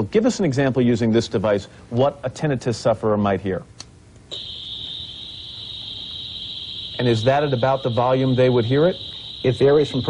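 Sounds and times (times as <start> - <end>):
steady high-pitched hiss: 0.0 - 10.0.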